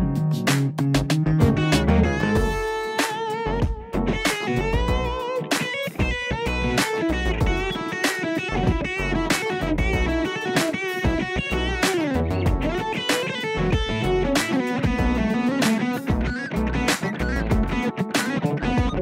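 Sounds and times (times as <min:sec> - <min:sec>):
backing track with steady beat: 0:00.0 - 0:19.0
overdriven electric guitar lead: 0:01.4 - 0:19.0.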